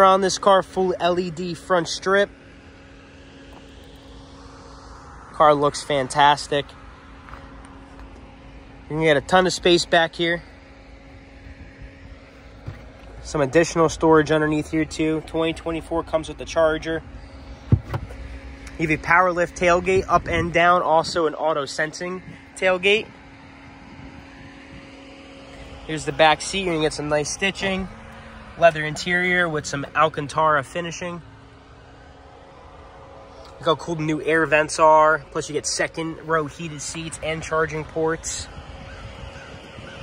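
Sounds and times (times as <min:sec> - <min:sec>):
faint mechanical drone: 0:00.0 - 0:40.0
outdoor background noise: 0:00.0 - 0:40.0.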